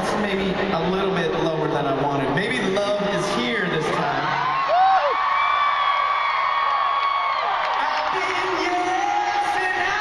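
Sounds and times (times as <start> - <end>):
crowd cheering: 3.7 - 10.0.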